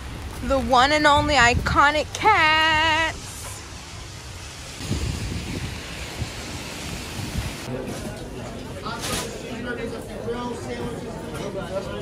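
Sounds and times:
rain on a wet street: 0.0s - 1.0s, 2.1s - 7.7s.

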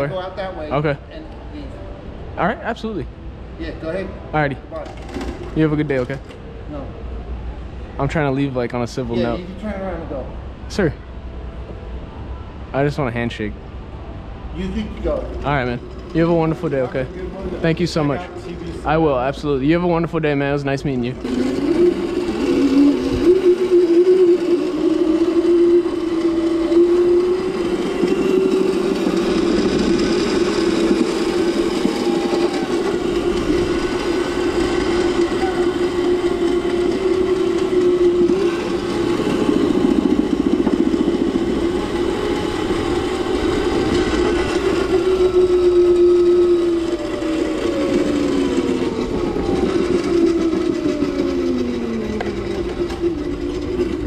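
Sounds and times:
electric motor whining: 14.6s - 54.0s.

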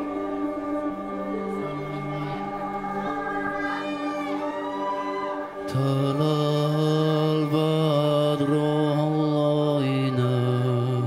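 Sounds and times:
low drone: 0.0s - 11.0s
slow chant-like music: 0.0s - 11.0s.

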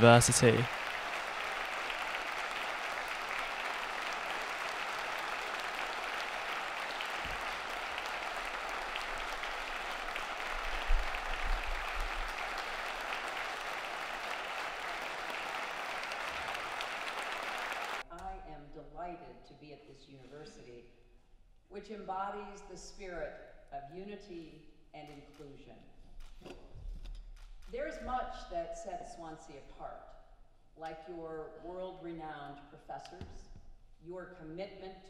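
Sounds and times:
audience applause: 0.0s - 18.0s.

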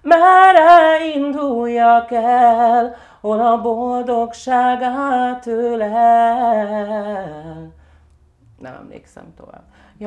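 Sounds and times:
woman singing unaccompanied: 0.0s - 7.8s.

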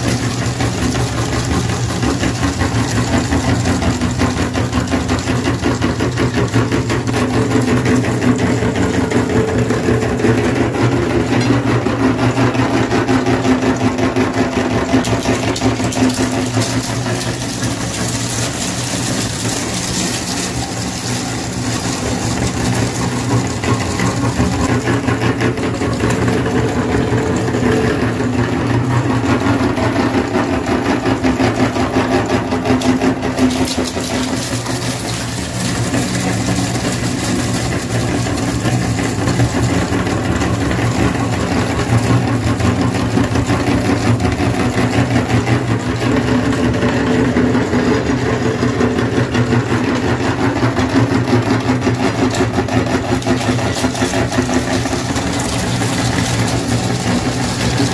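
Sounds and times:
grinder crunching hard pieces: 0.0s - 57.9s
meat grinder motor humming: 0.0s - 57.9s.

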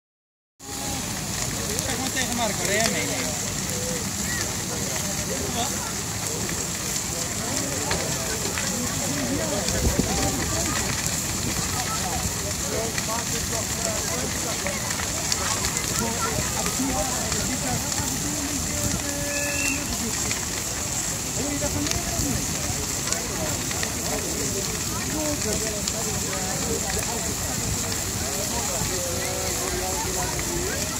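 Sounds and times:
bonfire hissing and crackling: 0.6s - 30.9s
faint voices: 0.6s - 30.9s
fire hose water jets: 0.6s - 30.9s.

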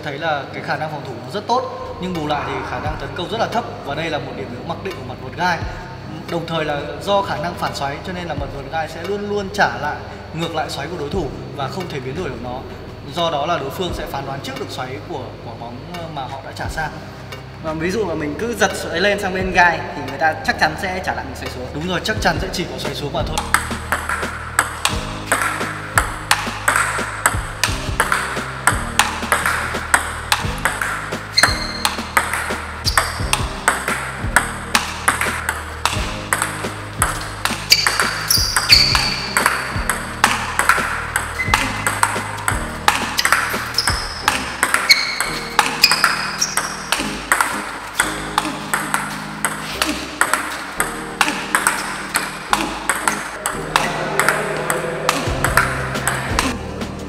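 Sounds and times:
background music: 0.0s - 57.0s
ping pong ball clicking off paddles: 22.9s - 56.6s.

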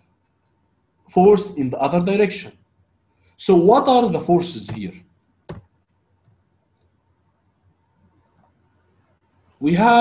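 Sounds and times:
computer mouse click: 5.5s - 6.5s, 8.0s - 8.6s.

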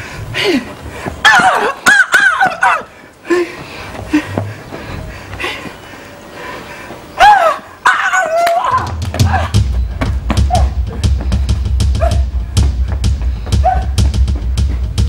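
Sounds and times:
dog yelping and barking: 1.3s - 2.9s, 7.2s - 9.4s
music with heavy drum beat: 8.8s - 15.0s.

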